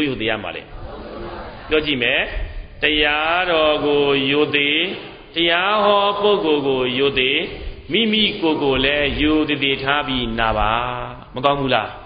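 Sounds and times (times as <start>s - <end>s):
man chanting: 1.7s - 12.0s.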